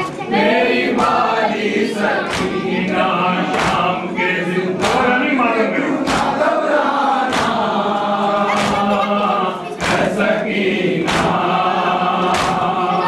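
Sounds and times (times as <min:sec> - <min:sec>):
men chanting together: 0:00.0 - 0:13.0
rhythmic chest slaps: 0:00.0 - 0:13.0.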